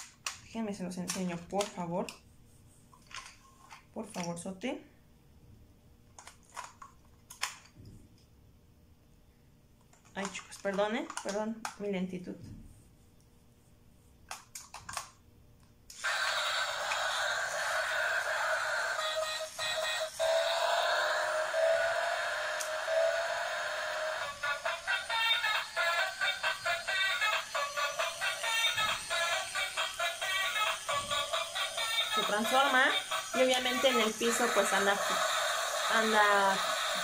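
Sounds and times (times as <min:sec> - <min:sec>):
toy robot rising whine: 0:15.9 - 0:37.0
toy switch clicks: 0:22.4 - 0:22.8
synthetic voice: 0:24.2 - 0:37.0.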